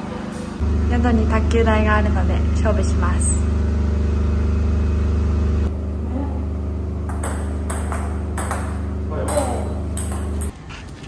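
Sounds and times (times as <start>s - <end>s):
steady low hum: 0.5s - 10.8s
ping-pong ball clicks on table: 7.1s - 10.5s.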